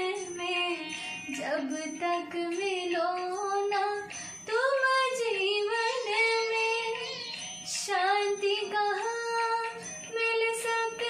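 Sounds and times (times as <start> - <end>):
woman singing devotional song: 0.0 - 11.0.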